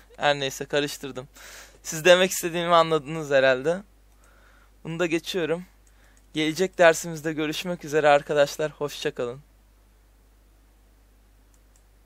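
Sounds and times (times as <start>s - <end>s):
computer mouse clicks: 4.1s - 4.4s, 5.8s - 6.4s, 11.5s - 11.9s.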